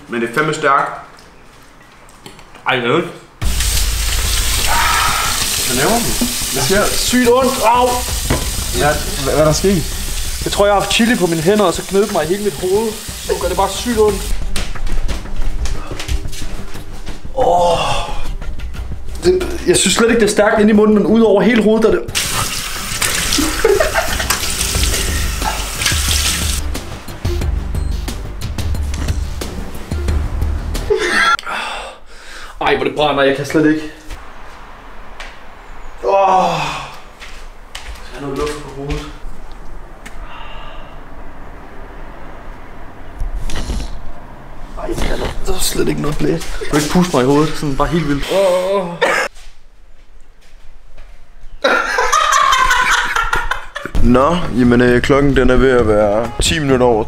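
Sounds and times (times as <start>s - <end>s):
low rumble: 3.4s - 7.0s
hurried footsteps: 13.8s - 20.2s, 37.0s - 40.2s
man groaning: 36.1s - 37.1s.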